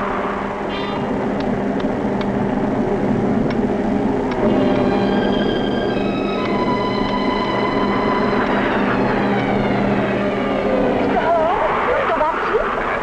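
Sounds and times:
held musical notes: 0:00.0 - 0:11.3.

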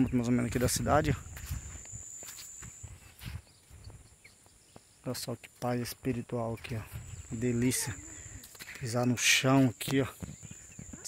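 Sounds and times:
soft footsteps on dirt path: 0:00.0 - 0:11.0.

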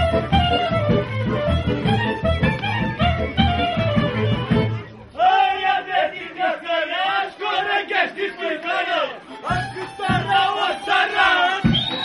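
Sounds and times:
dancers shouting rhythmic calls: 0:05.0 - 0:12.0.

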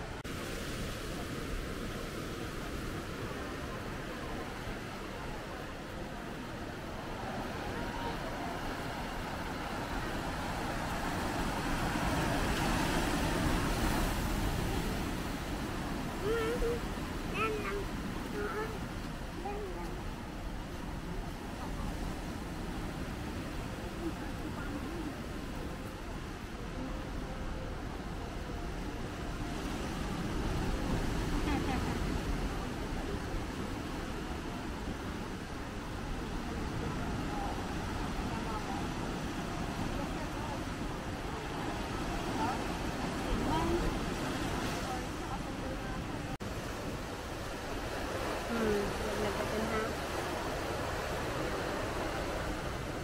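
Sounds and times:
faint voice: 0:03.3 - 0:08.9, 0:16.0 - 0:20.2.

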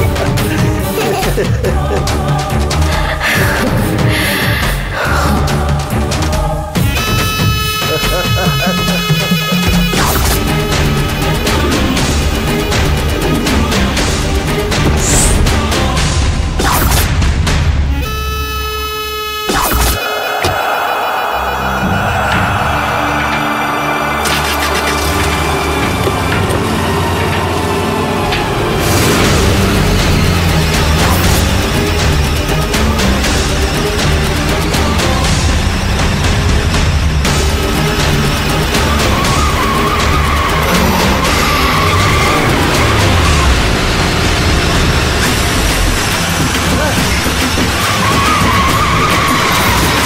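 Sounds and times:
background music: 0:00.0 - 0:50.0
tyres squealing: 0:06.8 - 0:13.7, 0:37.7 - 0:50.0
van engine starting and running: 0:08.2 - 0:17.9, 0:21.1 - 0:50.0.

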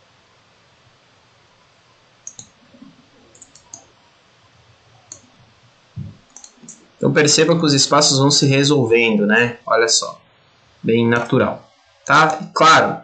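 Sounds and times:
computer mouse clicking: 0:02.2 - 0:03.9, 0:05.1 - 0:05.4, 0:06.0 - 0:06.8.

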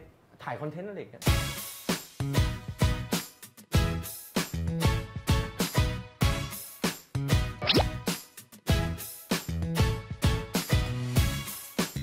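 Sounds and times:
upbeat background music: 0:01.2 - 0:12.0.

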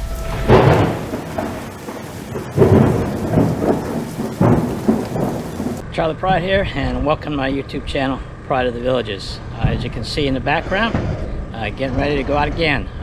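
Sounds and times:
rain hissing: 0:00.0 - 0:05.8
thunder rumbling: 0:00.0 - 0:05.9.

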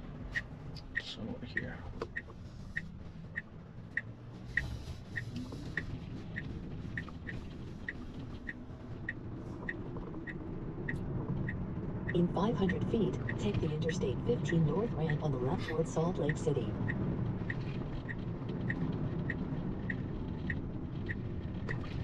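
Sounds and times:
road and tyre rumble: 0:00.0 - 0:22.0
turn signal ticking: 0:00.3 - 0:22.0.

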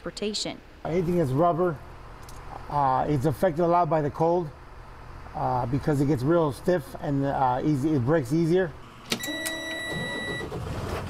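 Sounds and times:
diesel engine rumble: 0:00.7 - 0:09.2
electronic dashboard tone: 0:09.2 - 0:10.5.

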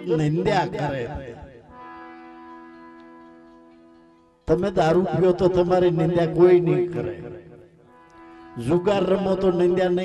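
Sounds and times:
harmonium sustained chord: 0:00.0 - 0:10.0.

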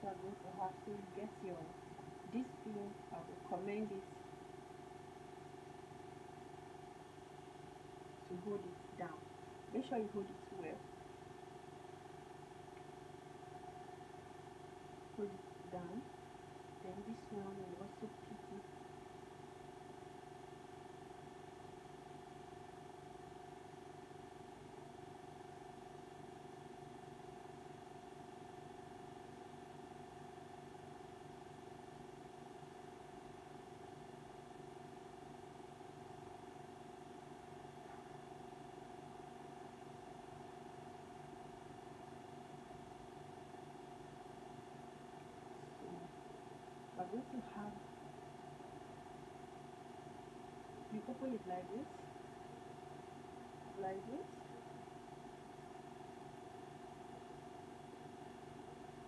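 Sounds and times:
steady machine hum: 0:00.0 - 0:59.0.

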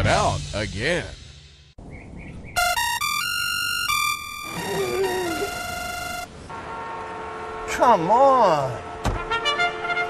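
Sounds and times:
music: 0:02.6 - 0:05.6
digital alarm clock beeping: 0:02.6 - 0:06.3.

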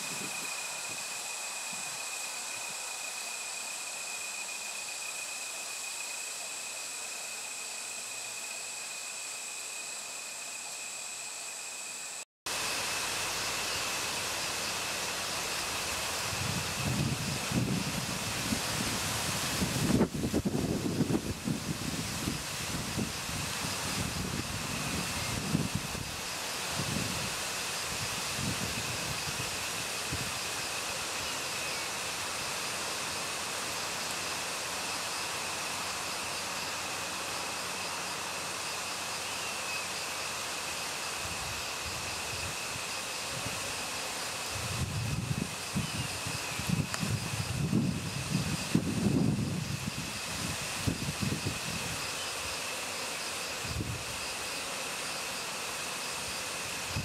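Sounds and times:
wind gusts on microphone: 0:00.0 - 0:01.1, 0:15.9 - 0:30.6, 0:44.5 - 0:52.2, 0:53.6 - 0:54.3, 0:56.8 - 0:57.0
steady hiss: 0:00.0 - 0:57.0.

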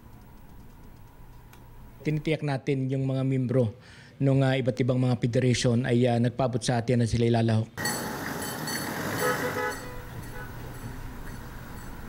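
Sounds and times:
car horn toots: 0:07.8 - 0:10.8
passing vehicles: 0:07.8 - 0:12.0.

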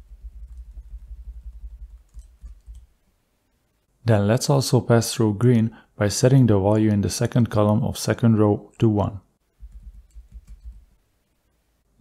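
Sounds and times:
computer keyboard keystrokes: 0:09.6 - 0:10.8.

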